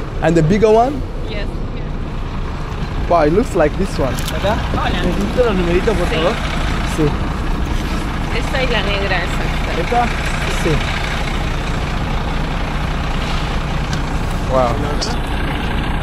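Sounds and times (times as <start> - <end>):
bus engine idling: 0.0 - 16.0.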